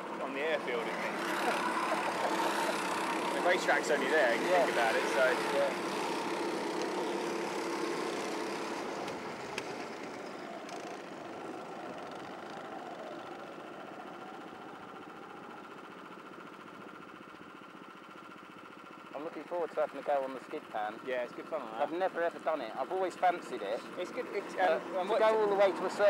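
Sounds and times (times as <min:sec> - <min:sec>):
kart engines running: 0:00.0 - 0:26.0.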